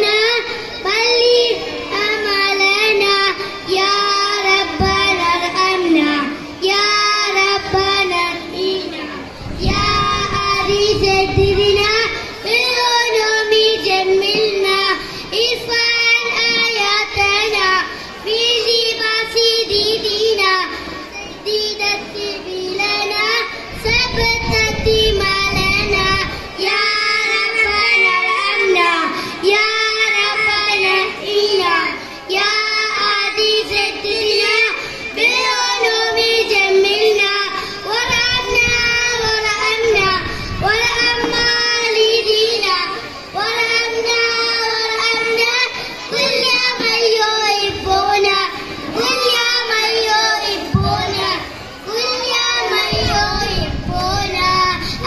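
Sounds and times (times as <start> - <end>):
children chanting in unison: 0.0 - 55.0.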